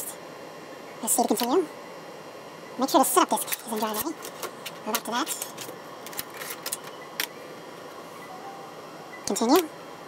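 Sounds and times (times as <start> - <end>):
computer hum: 0.0 - 10.0.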